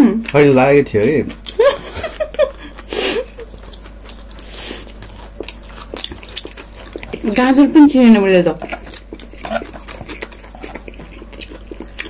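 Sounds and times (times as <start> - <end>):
chewing with lip smacks: 0.2 - 1.6, 2.7 - 12.0.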